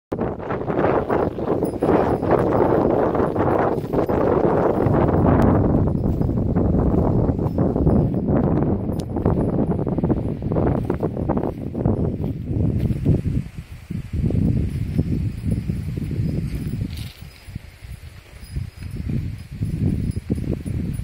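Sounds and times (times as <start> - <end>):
footsteps on stony ground: 0.7 - 21.0
leafy branches brushing: 10.4 - 20.7.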